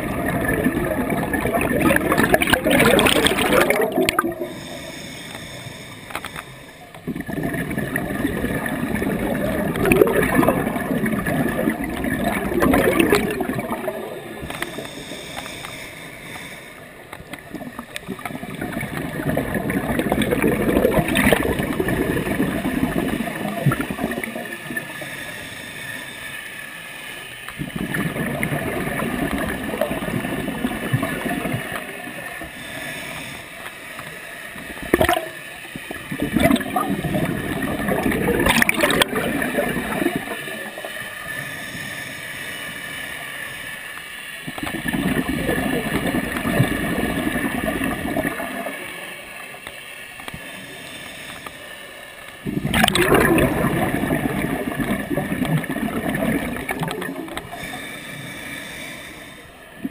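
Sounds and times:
underwater exhaust bubbles gurgling: 0:00.0 - 0:59.9.

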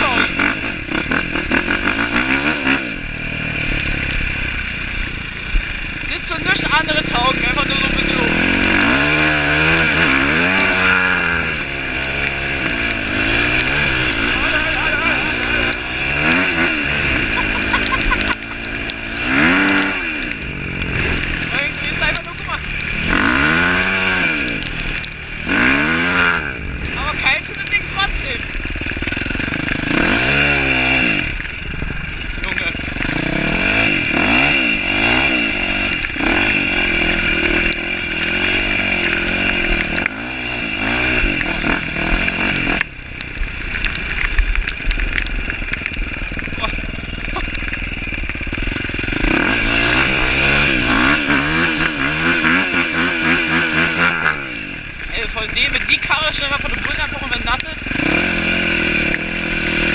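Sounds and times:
motocross engine revving: 0:00.0 - 0:59.9.

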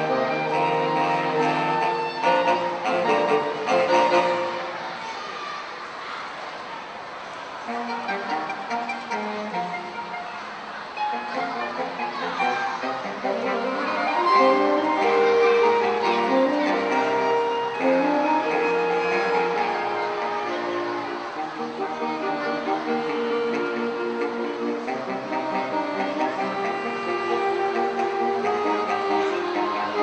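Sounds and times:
saxophone quartet chords: 0:00.0 - 0:04.9, 0:07.7 - 0:30.0.

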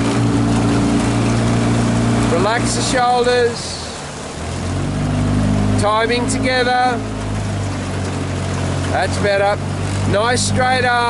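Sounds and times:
outboard motor humming: 0:00.0 - 0:11.0
water hissing: 0:00.0 - 0:11.0
wind: 0:00.0 - 0:11.0.

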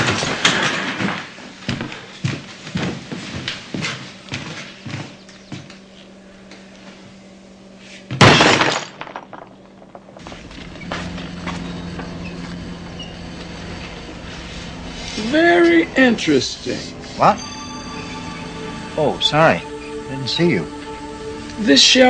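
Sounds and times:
crash of shattering: 0:08.2 - 0:09.6
low hum: 0:08.8 - 0:22.0.

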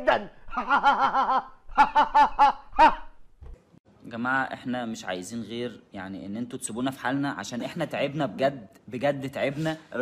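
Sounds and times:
man laughing: 0:00.4 - 0:03.2.

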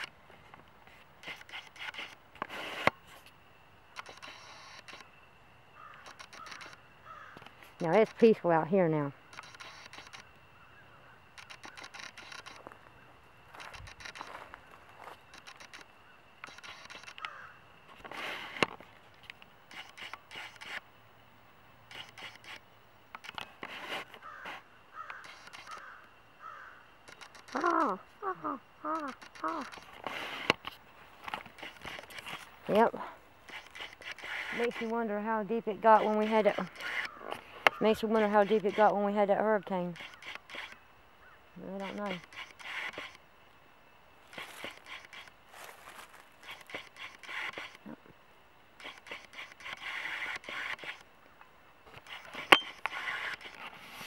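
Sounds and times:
crows cawing: 0:05.7 - 0:07.5, 0:10.5 - 0:11.9, 0:17.1 - 0:17.6, 0:24.2 - 0:26.9, 0:41.2 - 0:41.4
rustling: 0:44.2 - 0:48.0.

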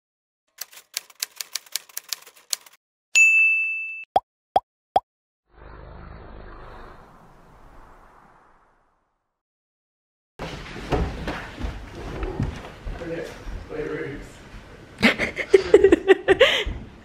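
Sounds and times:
typewriter keystrokes: 0:00.5 - 0:02.8
bell ding: 0:03.2 - 0:04.1.

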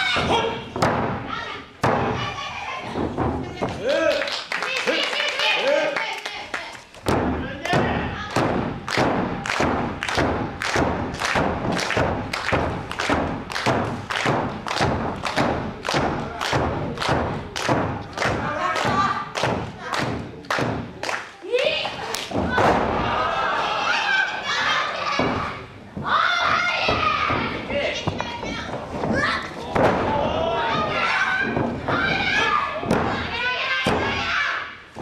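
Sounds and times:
rhythmic thudding: 0:00.0 - 0:03.9, 0:07.0 - 0:21.0, 0:24.4 - 0:35.0
voices shouting: 0:29.2 - 0:34.6.

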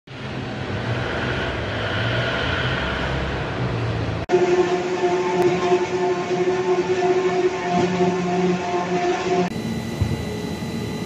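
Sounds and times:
production line machine humming: 0:04.3 - 0:11.0.

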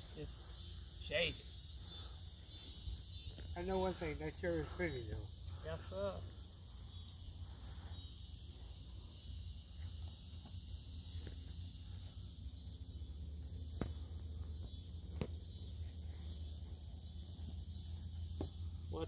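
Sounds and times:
insect chorus chirring: 0:00.0 - 0:19.0.

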